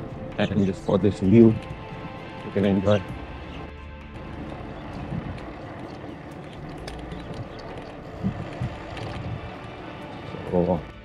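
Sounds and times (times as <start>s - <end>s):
bicycle tyres rumbling: 0.0s - 11.0s
wind on microphone: 4.8s - 10.5s.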